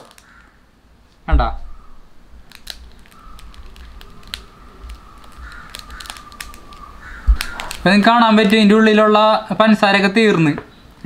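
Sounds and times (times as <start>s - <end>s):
thump: 1.3s - 1.7s
grains ticking into glass bowl: 2.6s - 8.7s.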